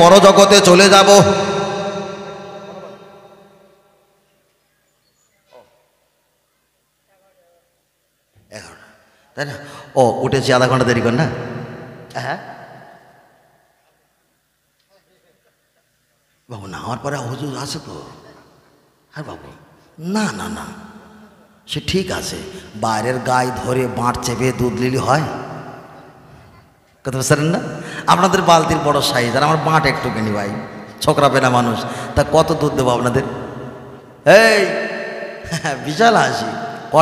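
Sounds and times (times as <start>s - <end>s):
man speaking into a microphone: 0.0s - 3.2s, 8.5s - 11.5s, 16.5s - 21.0s, 21.6s - 25.6s, 27.0s - 37.0s
man chanting over echoing loudspeaker: 0.0s - 3.7s.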